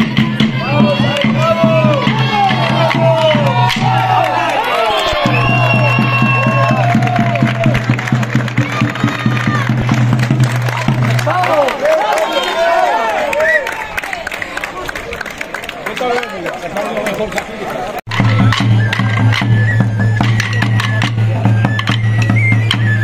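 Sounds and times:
drum beating evenly: 0:00.0 - 0:04.4, 0:05.1 - 0:11.5, 0:18.1 - 0:23.0
crowd voices: 0:00.0 - 0:23.0.

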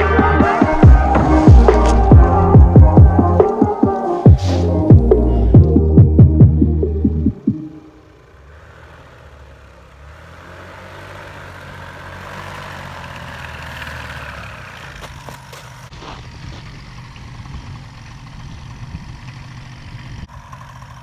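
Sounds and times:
paramotor engine and propeller: 0:00.8 - 0:21.0.

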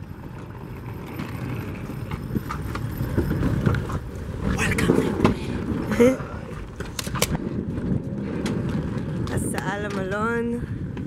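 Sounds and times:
suitcase wheels rolling on asphalt: 0:00.0 - 0:11.0.

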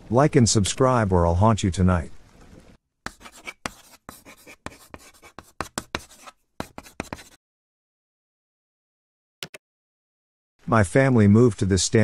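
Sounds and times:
chalk scratching on a blackboard: 0:03.1 - 0:07.4.

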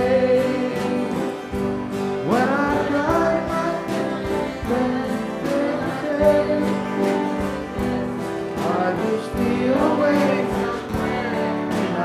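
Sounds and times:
instrumental accompaniment with beat: 0:00.0 - 0:12.0
person singing gospel: 0:00.0 - 0:12.0.

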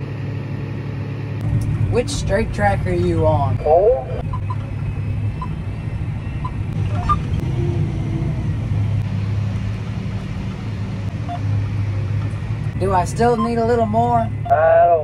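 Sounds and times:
tractor engine low hum: 0:00.0 - 0:15.0.

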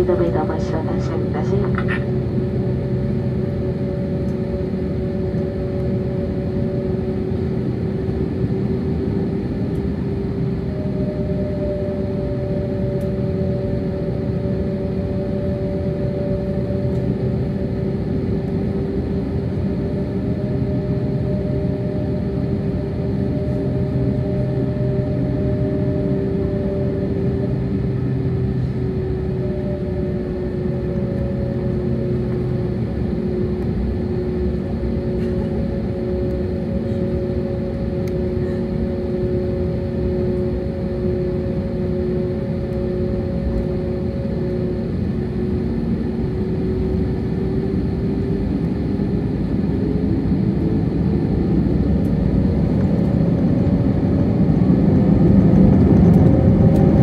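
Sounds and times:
jet engines idling: 0:00.0 - 0:57.0
steady whining tones: 0:00.0 - 0:57.0.

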